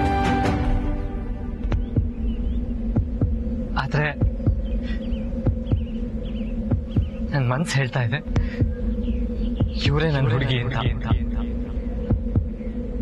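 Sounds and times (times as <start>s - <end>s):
steady held drone: 0.0s - 13.0s
soft thumping beat: 1.5s - 7.4s, 8.2s - 13.0s.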